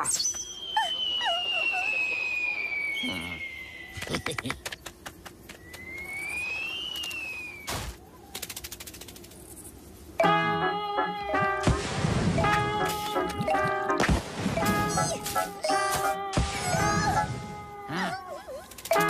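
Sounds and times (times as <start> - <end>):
sliding cartoon whistle: 0.0 - 4.0.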